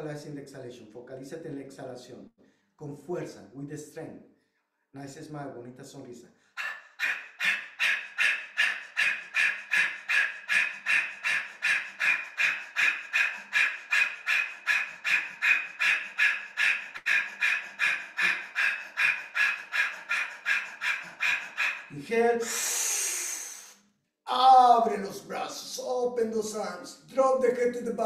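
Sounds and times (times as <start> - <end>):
man panting forcefully: 6.6 - 23.1.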